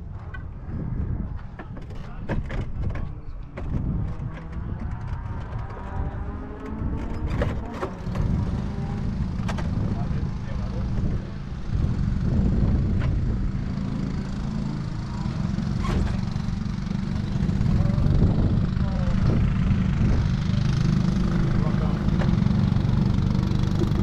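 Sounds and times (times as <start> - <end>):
go-kart engines idling: 1.3 - 24.0.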